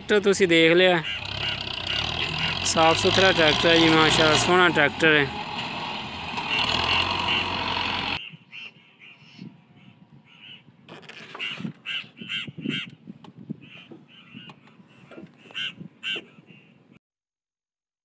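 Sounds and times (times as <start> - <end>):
tractor diesel engine running: 0.0 - 8.2
bird short calls: 1.0 - 2.6, 13.6 - 16.8.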